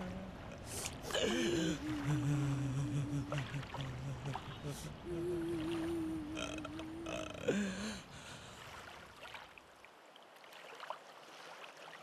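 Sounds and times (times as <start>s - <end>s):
man wailing: 1.1s - 5.4s, 6.0s - 8.0s.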